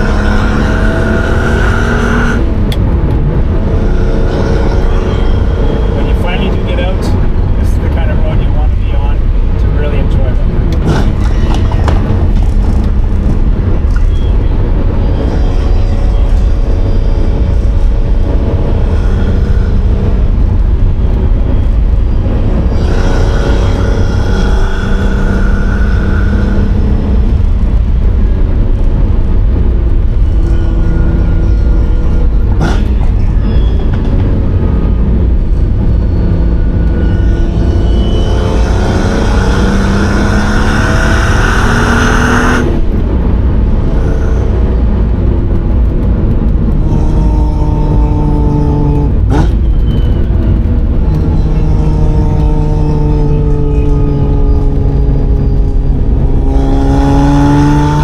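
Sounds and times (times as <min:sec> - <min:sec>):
car engine revving through gears: 0:00.0 - 0:58.0
low road rumble: 0:00.0 - 0:58.0.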